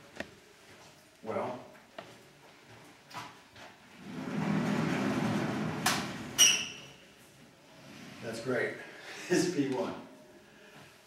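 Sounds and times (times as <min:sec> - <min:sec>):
chalkboard panel rumbling slide: 0:04.0 - 0:06.4.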